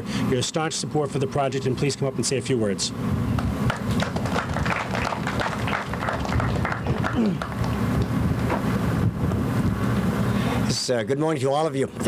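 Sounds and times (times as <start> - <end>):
crowd applauding: 3.7 - 8.1.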